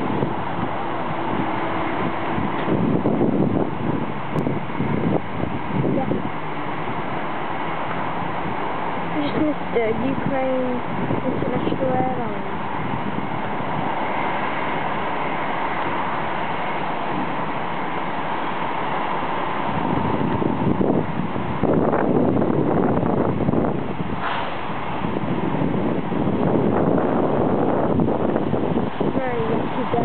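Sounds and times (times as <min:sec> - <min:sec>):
distant jet engines rushing: 0:00.0 - 0:30.0
wind buffeting microphone: 0:00.0 - 0:30.0.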